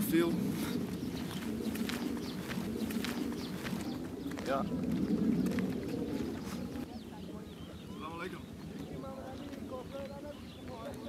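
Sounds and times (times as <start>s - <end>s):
men's voices outdoors: 0.0s - 11.0s.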